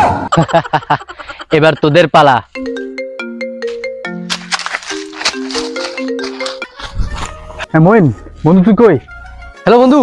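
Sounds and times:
marimba-like ringtone melody: 2.5s - 7.1s.

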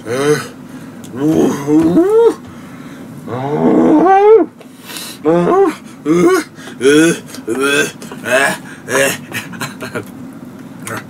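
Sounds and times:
man groaning in pain: 0.0s - 2.4s, 5.2s - 9.2s.

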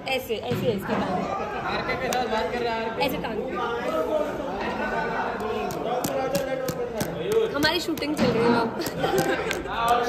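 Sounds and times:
overlapping chatter of voices: 0.0s - 10.0s.

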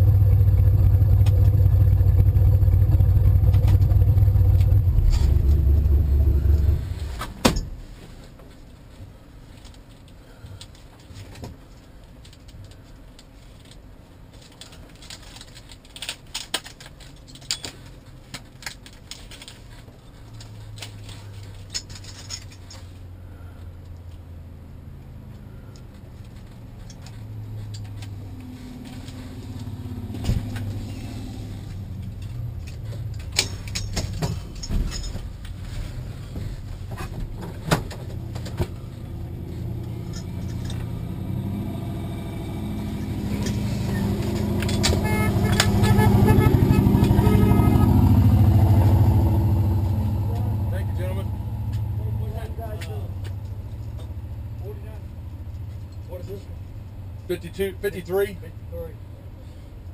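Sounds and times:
car engine running: 0.0s - 8.0s, 25.4s - 59.1s.

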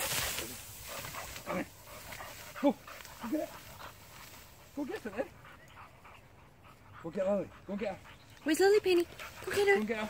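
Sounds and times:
grain stalks rustling: 0.0s - 1.6s
dog panting: 0.8s - 10.0s.

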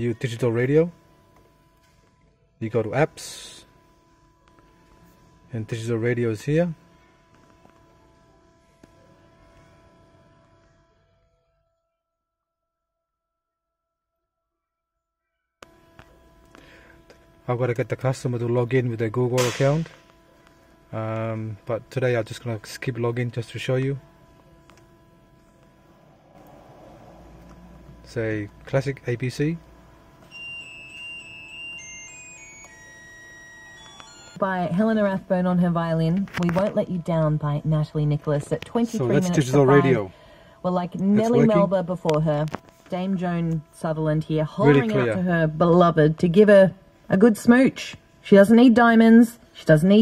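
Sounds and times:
thin steady tones: 15.6s - 50.0s.

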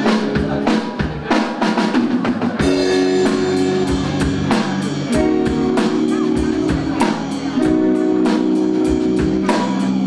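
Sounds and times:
drum kit strikes: 0.0s - 10.0s
sustained guitar chords: 2.6s - 10.0s.

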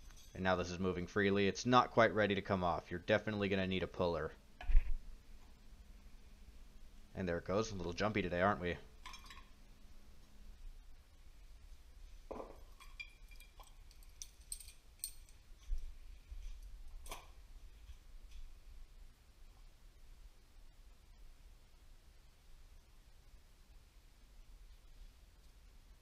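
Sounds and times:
metal parts clinking and knocking: 12.8s - 15.4s.

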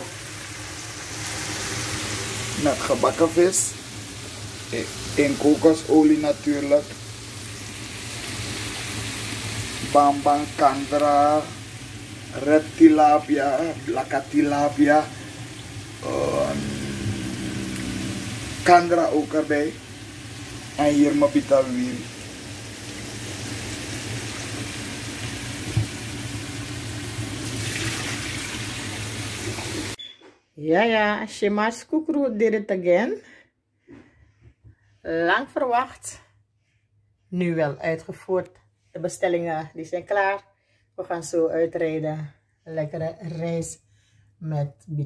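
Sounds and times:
fish sizzling in oil: 0.0s - 30.0s
hissing kitchen noise: 0.0s - 30.1s
low hum: 15.1s - 18.7s.

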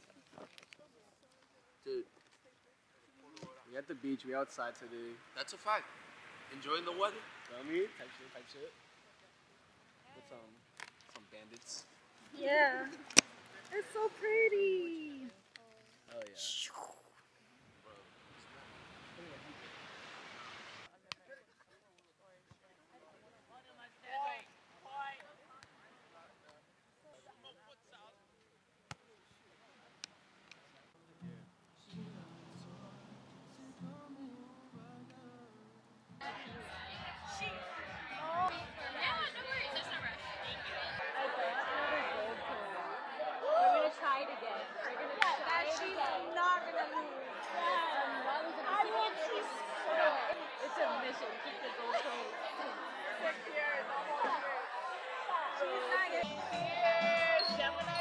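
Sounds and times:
chatter of many voices: 0.0s - 58.0s
wind: 0.0s - 58.0s
surf on a beach: 3.9s - 10.6s, 17.6s - 20.9s.

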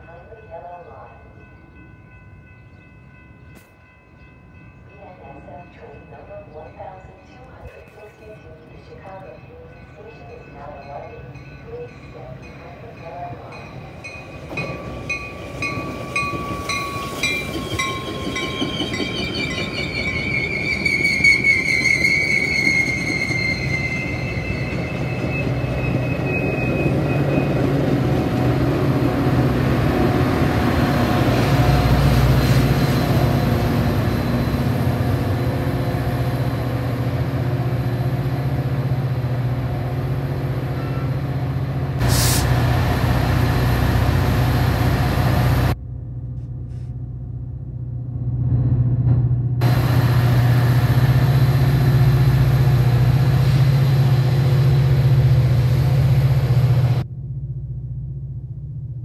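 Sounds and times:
train coaches rolling past: 0.0s - 45.8s, 48.4s - 57.1s
diesel locomotive drone: 0.0s - 59.0s
high wheel squeal: 16.6s - 27.6s.

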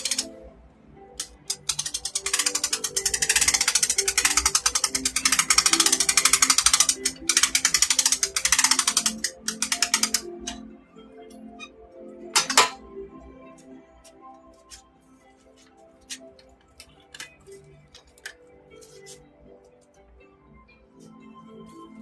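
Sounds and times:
fast mechanical ratchet clicking: 0.0s - 0.3s, 1.2s - 10.3s
faint background music: 0.0s - 22.0s.

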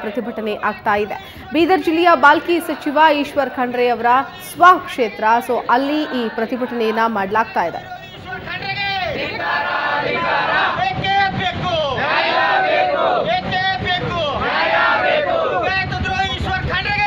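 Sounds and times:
crowd shouting slogans: 4.2s - 17.0s.

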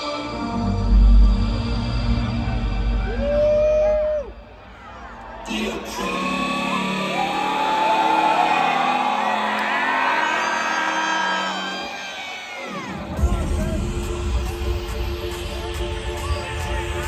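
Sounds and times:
electronic dance music: 0.0s - 17.0s
crowd screaming and whooping: 2.0s - 17.0s.

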